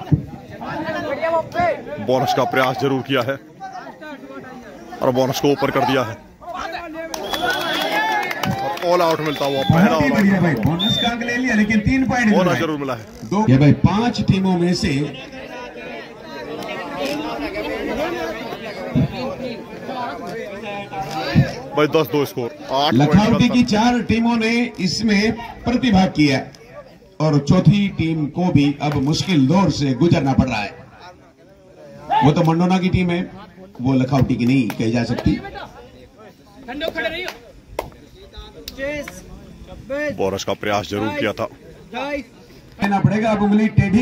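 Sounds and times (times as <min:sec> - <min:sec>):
men talking and calling: 0:00.0 - 0:44.0.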